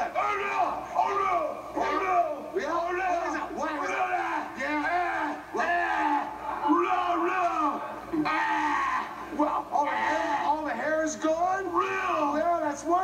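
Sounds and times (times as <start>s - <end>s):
man wailing: 8.2s - 10.6s.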